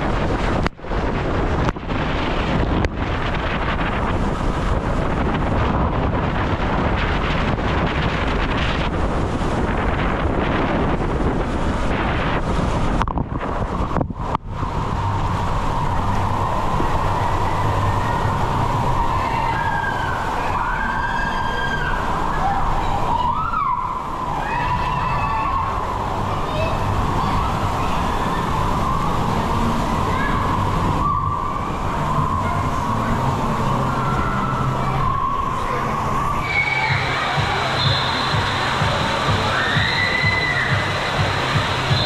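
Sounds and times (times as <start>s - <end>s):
water rushing in waterslide: 0.0s - 42.0s
squeaky rising and falling tones: 26.9s - 42.0s.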